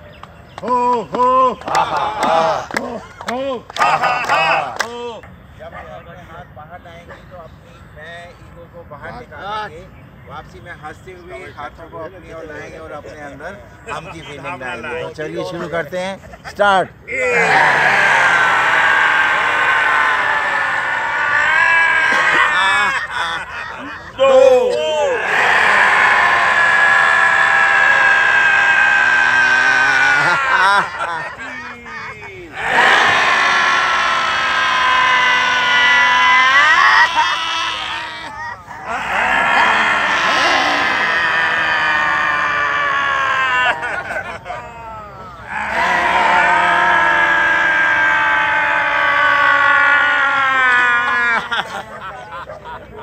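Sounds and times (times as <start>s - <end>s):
group of people shouting together: 17.1s - 23.1s, 24.2s - 44.3s, 45.4s - 51.4s
long high vocal cry: 32.5s - 44.1s.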